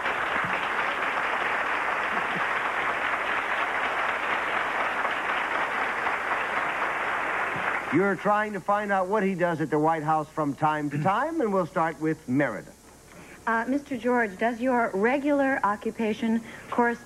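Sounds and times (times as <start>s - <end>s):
studio audience applauding: 0.0s - 8.6s.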